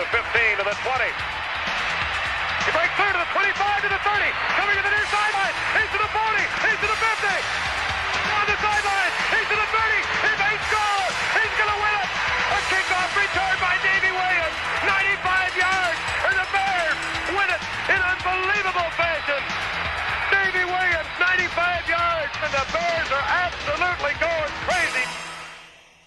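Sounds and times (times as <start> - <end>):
people shouting and cheering: 0.0 - 25.6
music: 0.0 - 26.0.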